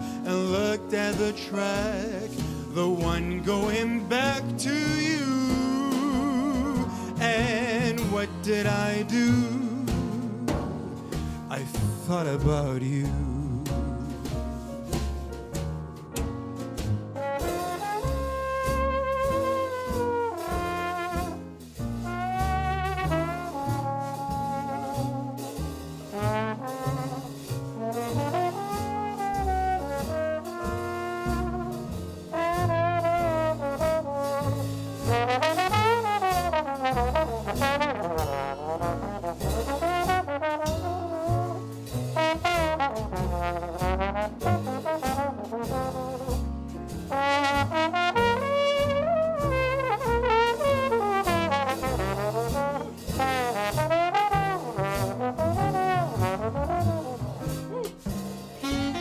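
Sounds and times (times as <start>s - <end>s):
plucked upright bass: 0.0s - 59.0s
slide trombone jazz solo: 0.0s - 59.0s.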